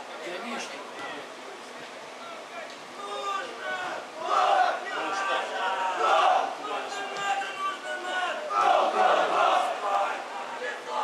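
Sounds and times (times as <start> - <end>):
men shouting: 2.4 - 11.0.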